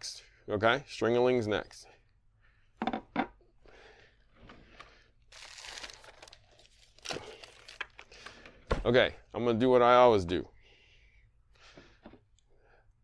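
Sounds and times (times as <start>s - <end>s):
rustling and crinkling items: 4.3s - 8.7s.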